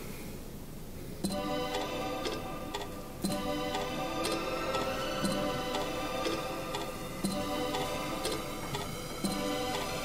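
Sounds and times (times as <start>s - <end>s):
clock-like ticking beat: 1.2s - 10.0s
sustained music notes: 1.3s - 10.0s.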